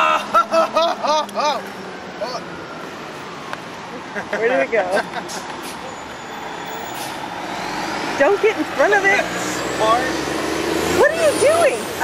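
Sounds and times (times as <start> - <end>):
vehicle passing: 0.0 - 12.0.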